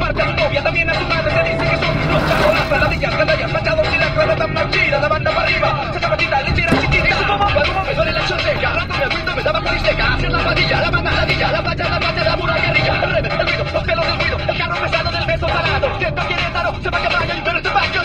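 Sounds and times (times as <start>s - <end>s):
car driving rumble: 0.0s - 18.0s
voices from car radio: 0.1s - 18.0s.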